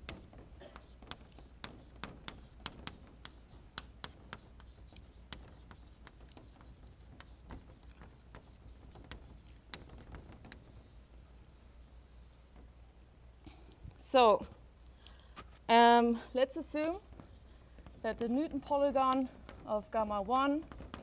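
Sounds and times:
chalk tapping and scratching: 0.0s - 12.7s, 16.6s - 21.0s.

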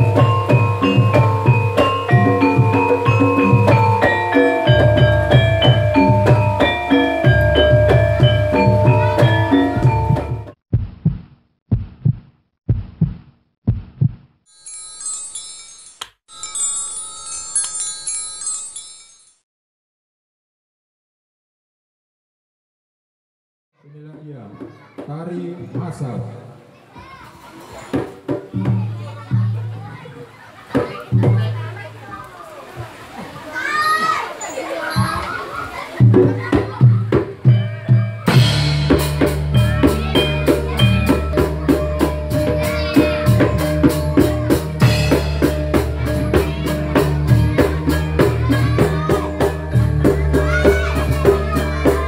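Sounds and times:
voices of onlookers: 0.0s - 10.3s, 23.9s - 52.0s
shimmer of chime tones: 0.0s - 10.4s, 14.5s - 19.4s
loud gamelan drum strokes: 0.0s - 10.5s, 36.0s - 52.0s
high bending shout: 37.6s - 52.0s.

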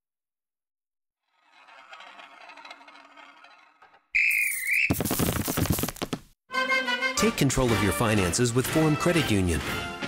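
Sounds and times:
loud warbling whistle blast: 4.2s - 5.0s.

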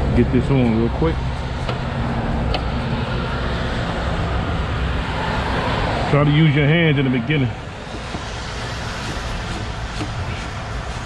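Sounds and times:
highway traffic passing: 0.0s - 11.0s.

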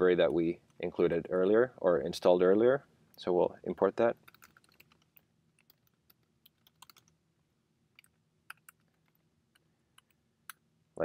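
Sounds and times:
typing on computer keyboard: 4.2s - 7.2s, 8.0s - 9.2s.

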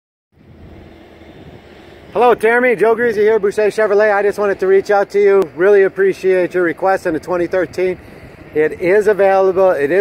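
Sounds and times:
low outdoor rumble: 0.4s - 10.0s.

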